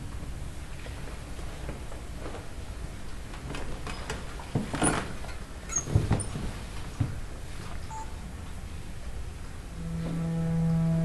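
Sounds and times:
low rumble of concert hall: 5.2s - 11.0s.

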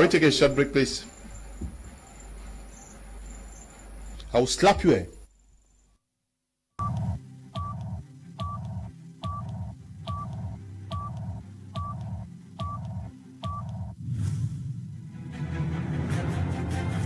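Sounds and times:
low synth bed: 0.0s - 5.3s, 6.8s - 15.2s.

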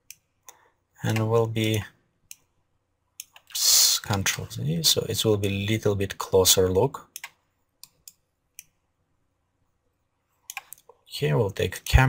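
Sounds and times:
faint computer mouse clicks: 10.4s - 11.0s.

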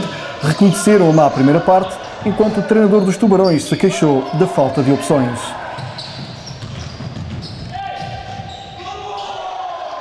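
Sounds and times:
players' footfalls on wooden court: 0.5s - 9.6s
basketball bouncing: 5.7s - 8.8s.

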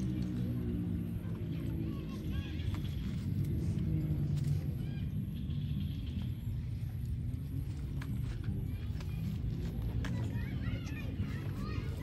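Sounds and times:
low rumbling outdoor noise: 0.0s - 12.0s.

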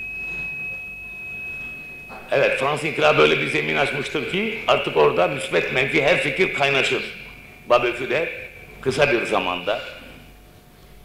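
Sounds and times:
steady high-pitched whine: 0.0s - 11.0s.

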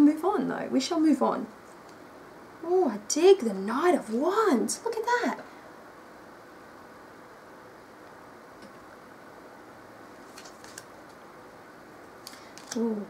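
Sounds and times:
steady background hum: 0.0s - 13.0s
cards clicking: 12.2s - 12.9s.

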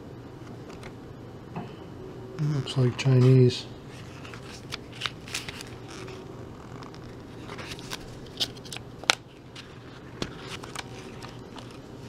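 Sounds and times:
paper rustling: 3.0s - 8.8s, 9.4s - 11.9s
sharp paper crackles: 4.0s - 11.9s.

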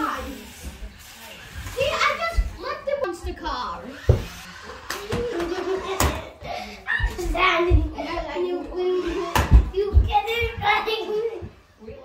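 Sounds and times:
child's voice: 0.0s - 0.7s, 1.7s - 4.1s, 4.9s - 12.0s.

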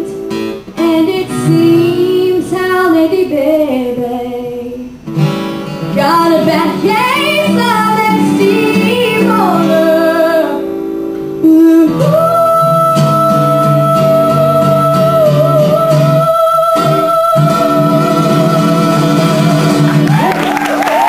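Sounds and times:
young woman singing: 0.0s - 5.0s, 5.8s - 10.7s, 11.4s - 20.1s
acoustic guitars: 0.0s - 21.0s.

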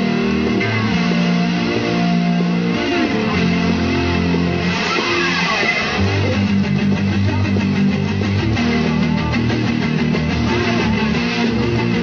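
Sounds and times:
distorted electric guitar chords: 0.0s - 12.0s.

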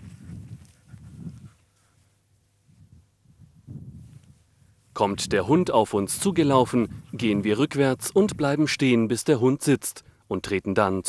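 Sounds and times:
footsteps through grass: 0.0s - 8.6s.

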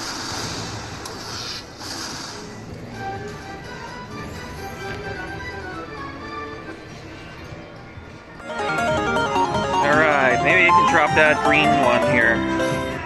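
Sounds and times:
loud busy music: 8.3s - 13.0s
slot machine melodic jingle: 8.4s - 13.0s.

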